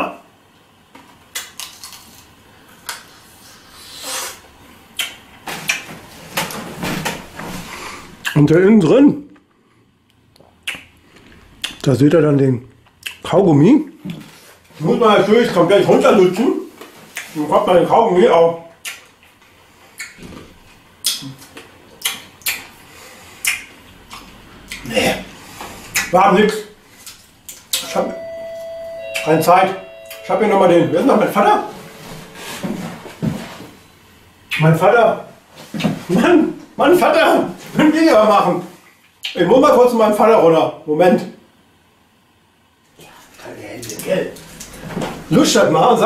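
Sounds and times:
wet mouth smacking clicks: 5.0 - 5.8, 10.4 - 10.9, 11.6 - 11.8, 12.8 - 13.2, 18.8 - 19.1, 20.0 - 20.2, 21.0 - 22.7, 23.4 - 24.9, 25.9 - 26.1.

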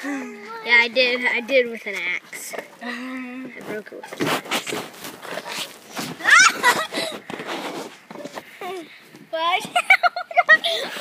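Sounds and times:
children laughing and squealing: 6.1 - 7.4, 9.6 - 11.0.

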